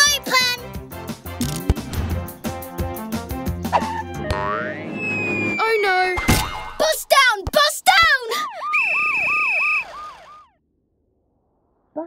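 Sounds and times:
cartoon police siren wail: 3.8s - 6.7s, 8.3s - 10.6s
steady high tone: 4.2s - 6.1s.

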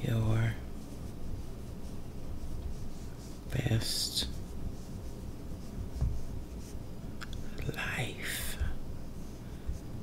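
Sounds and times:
low steady hum: 0.0s - 10.0s
breathy whisper: 7.4s - 8.8s.

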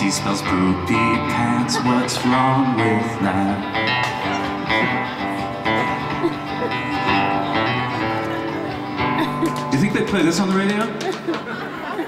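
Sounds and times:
guitar playing chords: 0.0s - 12.0s.

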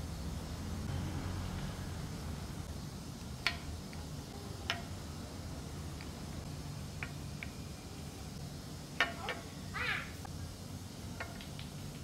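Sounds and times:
steady low hum: 0.0s - 12.0s
high-pitched animal calls: 9.1s - 10.3s.

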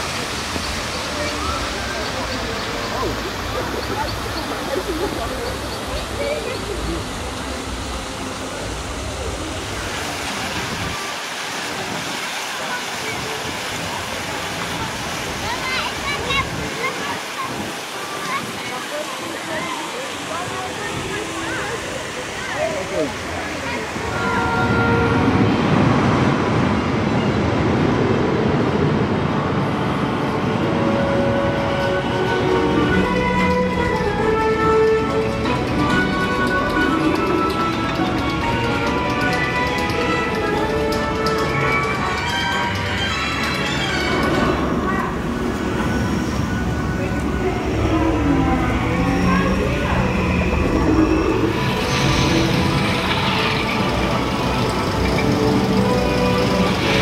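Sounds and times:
small waterfall rushing into pond: 0.0s - 26.1s, 30.6s - 57.0s
passers-by chatting: 0.0s - 57.0s
roller coaster rumbling on track: 0.0s - 57.0s.

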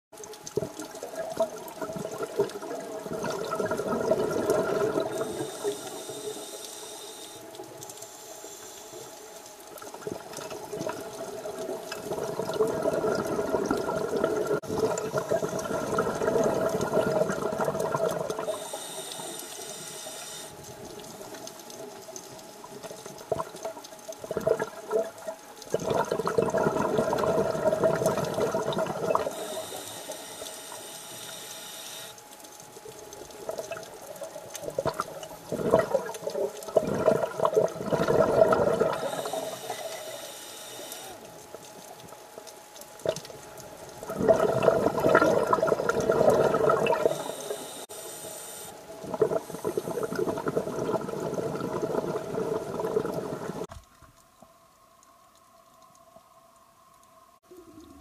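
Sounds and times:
exhaled bubbles rushing: 1.0s - 6.2s, 10.0s - 18.7s, 24.2s - 29.8s, 33.4s - 40.1s, 44.0s - 47.8s, 48.8s - 53.7s
regulator breath hiss: 5.1s - 9.3s, 18.4s - 20.6s, 29.3s - 32.2s, 39.0s - 41.2s, 47.0s - 48.8s.

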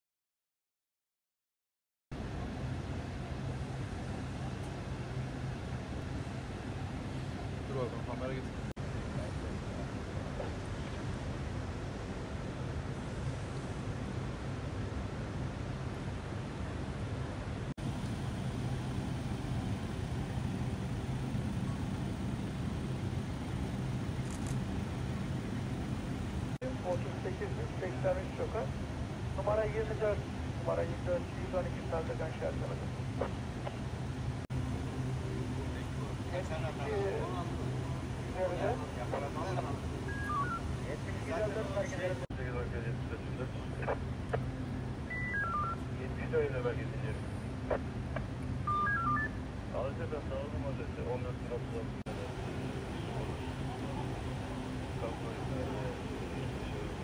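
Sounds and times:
low hum: 17.6s - 57.0s
short electronic beeps: 40.1s - 40.7s, 45.1s - 45.8s, 48.7s - 49.4s.

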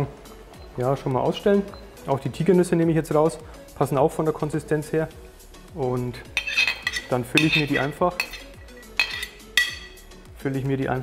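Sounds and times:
metal spoon clinking on pot: 6.4s - 10.0s.

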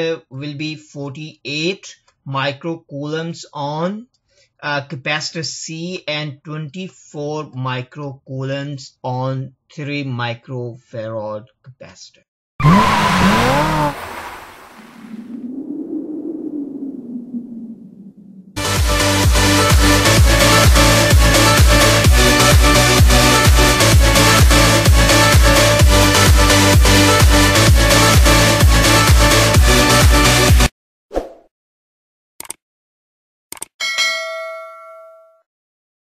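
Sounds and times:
low hum falling in pitch: 12.6s - 14.1s, 15.0s - 19.1s
bright bell ding: 33.8s - 35.4s.

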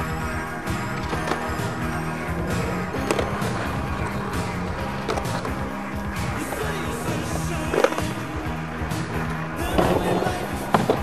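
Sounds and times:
background music: 0.0s - 11.0s
skateboard grinding on concrete: 0.0s - 11.0s
skateboard knocking on curb: 0.1s - 11.0s.

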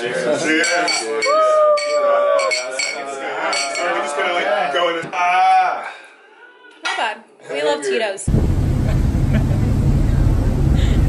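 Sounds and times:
glasses clinking: 0.6s - 4.0s
laughter: 8.8s - 9.8s.

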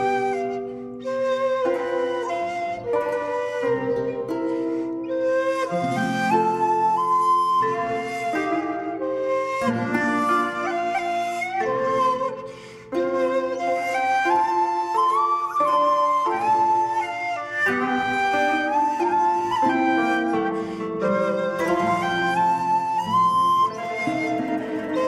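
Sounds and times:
flute melody with accompaniment: 0.0s - 25.0s.

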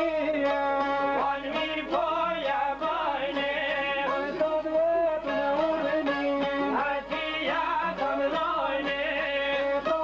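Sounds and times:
men singing wavering melody: 0.0s - 10.0s.

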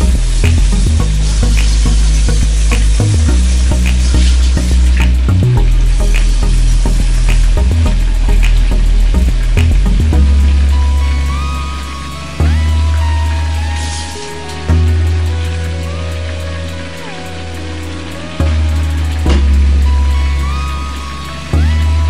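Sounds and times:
music with deep bass: 0.0s - 22.0s
crackling pops: 0.4s - 10.1s.

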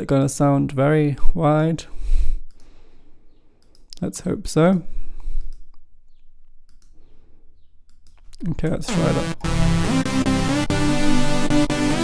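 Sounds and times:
computer mouse clicking: 3.6s - 4.0s, 6.7s - 7.0s.

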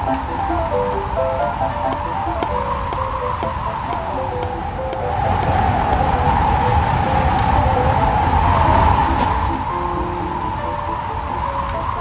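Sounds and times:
background music of short notes: 0.0s - 12.0s
gusting wind howling: 0.0s - 12.0s.

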